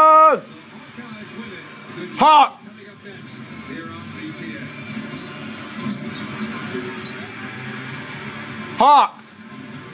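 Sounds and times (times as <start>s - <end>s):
music from tv speaker: 0.0s - 9.9s
voice over music: 2.1s - 3.0s, 8.7s - 9.5s.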